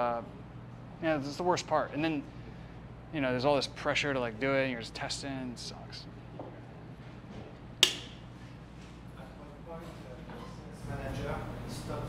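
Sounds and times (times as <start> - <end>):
sharp click: 7.8 - 8.2.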